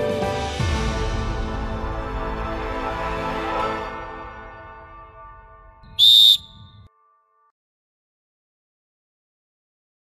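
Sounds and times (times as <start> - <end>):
referee's whistle blast: 5.9 - 6.9.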